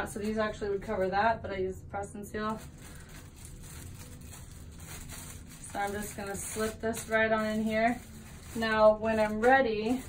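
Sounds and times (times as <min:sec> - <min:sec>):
low room hum: 0:00.0 - 0:10.0
plastic bag rustling: 0:02.3 - 0:10.0.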